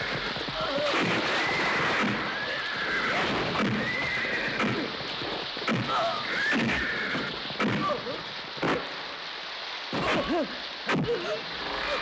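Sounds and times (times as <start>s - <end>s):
falling rain: 0.0s - 12.0s.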